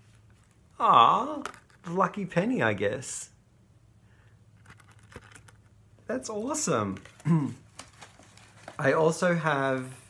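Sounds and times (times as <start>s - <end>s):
paper card clicks and rustles: 4.6s - 5.7s, 6.8s - 9.0s.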